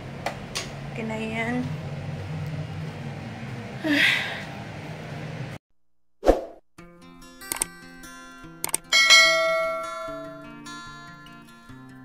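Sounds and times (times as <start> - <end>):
swish sound effect: 6.2 - 6.6
gentle guitar music: 6.8 - 12.0
quick clicks: 7.4 - 7.7, 8.6 - 8.9
bright ding: 8.9 - 11.0.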